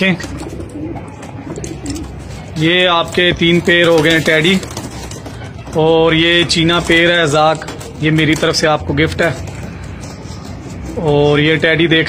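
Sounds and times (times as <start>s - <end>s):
pigeons cooing softly: 0.0s - 11.9s.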